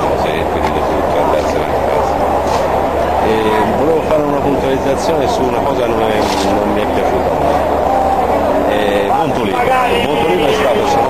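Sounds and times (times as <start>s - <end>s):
man talking: 0.0s - 2.6s, 3.2s - 7.7s, 8.7s - 11.0s
low background noise: 0.0s - 11.0s.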